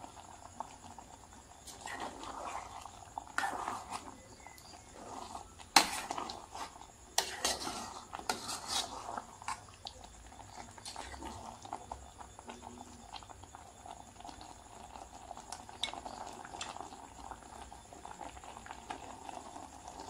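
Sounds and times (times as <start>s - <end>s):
curry bubbling and crackling: 0.0s - 20.0s.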